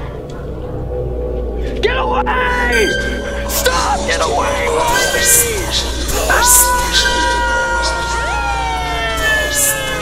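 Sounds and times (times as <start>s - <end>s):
man screaming: 3.8s - 10.0s.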